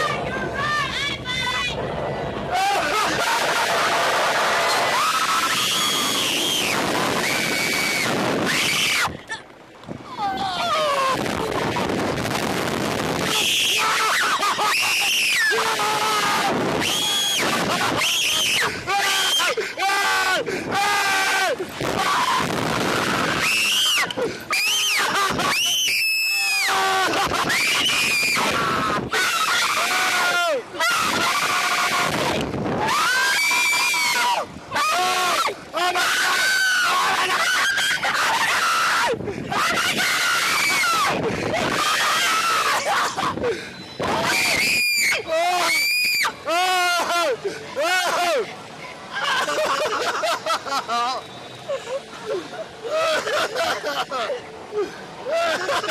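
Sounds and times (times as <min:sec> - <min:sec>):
people screaming in fright: 0:02.5 - 0:09.1, 0:10.1 - 0:11.8, 0:13.2 - 0:48.5, 0:49.1 - 0:55.9
man screaming: 0:32.8 - 0:43.1.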